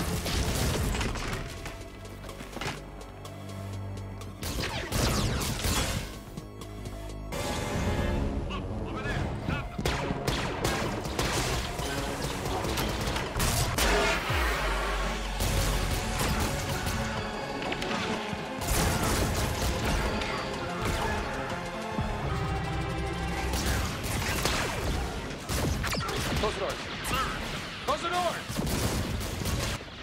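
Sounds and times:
background music: 0.0 - 28.4
dramatic orchestral film score: 0.0 - 30.0.

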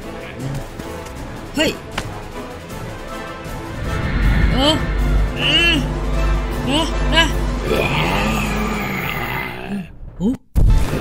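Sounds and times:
low background music drone: 0.0 - 9.6.

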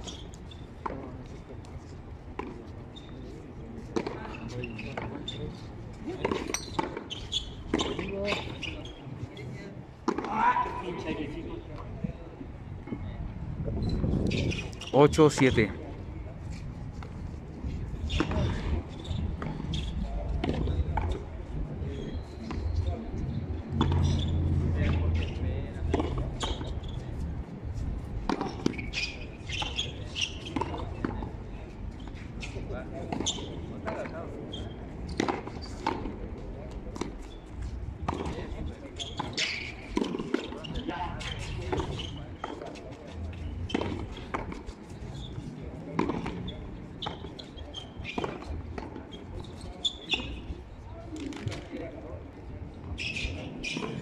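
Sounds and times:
players' voices: 7.7 - 13.3, 14.3 - 17.0, 17.7 - 54.0.

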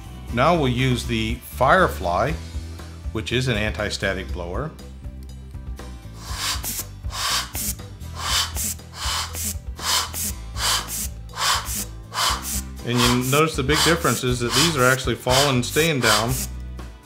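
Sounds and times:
background music: 0.0 - 17.0
air blower puffs hissing: 6.1 - 16.5.

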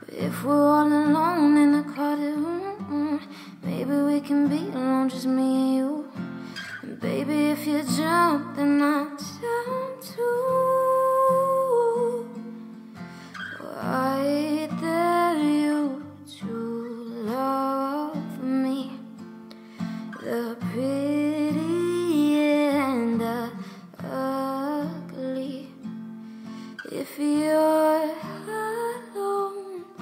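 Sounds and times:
woman singing: 0.0 - 19.3, 20.0 - 26.0, 26.7 - 30.0
strummed acoustic guitar: 0.0 - 30.0.

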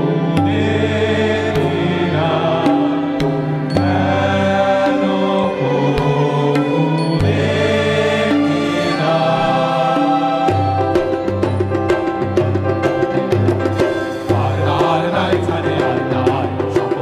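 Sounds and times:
chorus singing long notes: 0.0 - 17.0
instrumental accompaniment: 0.0 - 17.0
light percussion strikes: 0.0 - 17.0.

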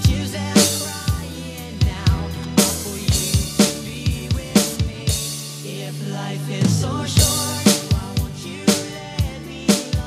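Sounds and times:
electronic drum kit playing: 0.0 - 10.0
pop-rock backing track: 0.0 - 10.0.

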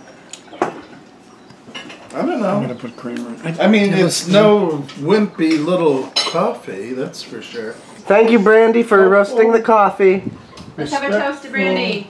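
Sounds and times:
tableware clinking: 1.7 - 2.1, 4.9 - 6.6.

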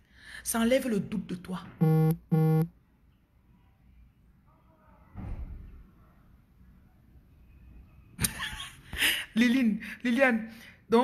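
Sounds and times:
buzzy electronic beeps: 1.8 - 2.7.

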